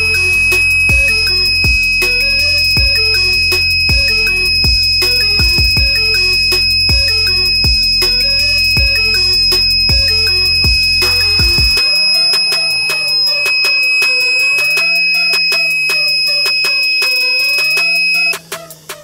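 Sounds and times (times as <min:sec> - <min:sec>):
high-pitched buzzer tone: 0:00.0 - 0:18.4.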